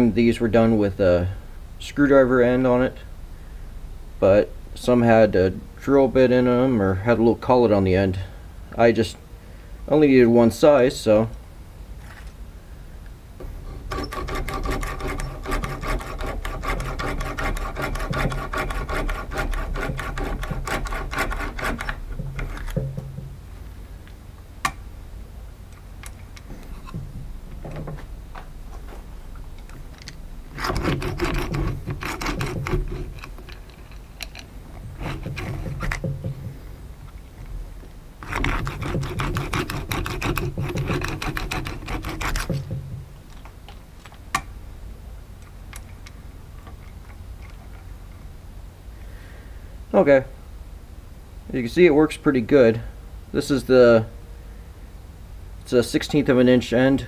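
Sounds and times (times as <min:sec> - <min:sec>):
hand drill whirring rattle: 0:13.8 - 0:22.7.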